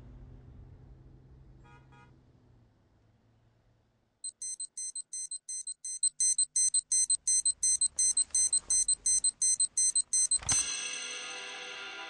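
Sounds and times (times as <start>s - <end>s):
alarm clock beeping: 4.3s - 11.6s.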